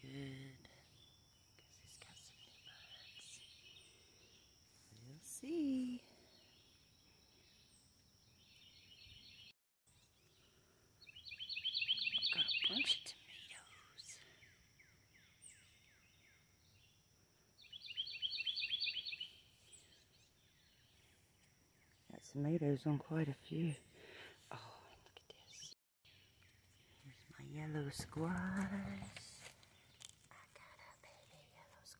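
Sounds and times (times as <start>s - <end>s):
songbird chirping: 0.0s - 31.9s.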